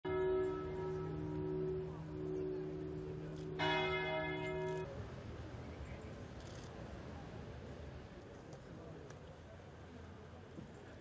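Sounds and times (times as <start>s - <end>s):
church bell tolling: 0.1s - 4.9s.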